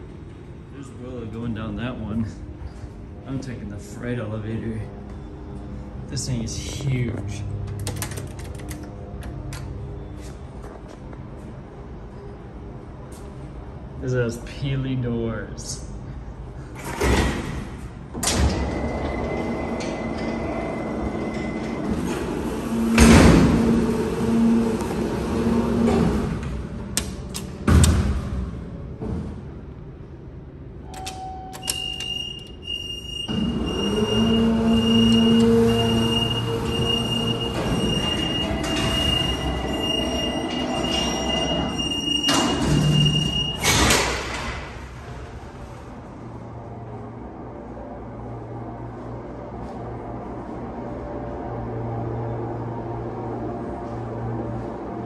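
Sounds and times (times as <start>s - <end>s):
high warning tone: 30.9s - 43.6s
elevator door panels clanking: 31.0s - 45.0s.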